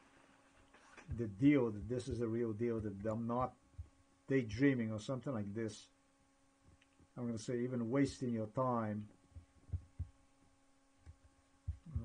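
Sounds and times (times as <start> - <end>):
electrical hum: 0.0 - 12.0
faint low thumps: 1.1 - 4.0, 9.0 - 10.3, 11.0 - 12.0.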